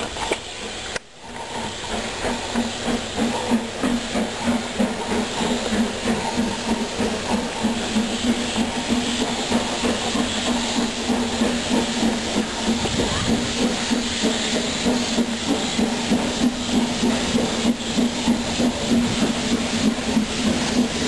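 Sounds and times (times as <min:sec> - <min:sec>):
steam hissing: 0:00.0 - 0:21.0
steam locomotive exhaust beats: 0:00.0 - 0:21.0.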